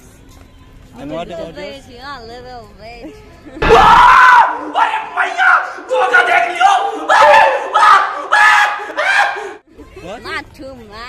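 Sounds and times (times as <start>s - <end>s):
young men shouting and laughing: 3.6s - 9.6s.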